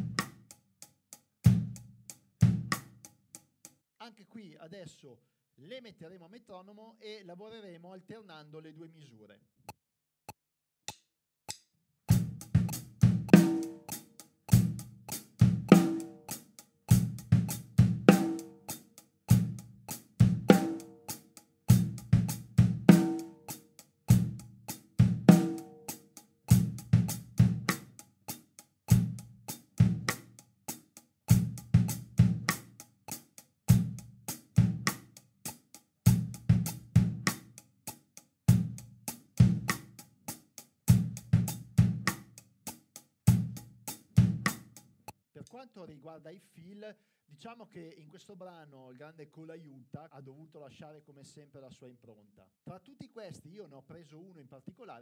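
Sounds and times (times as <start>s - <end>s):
drum kit rock groove: 0.0s - 0.6s, 1.4s - 3.1s, 12.1s - 44.8s.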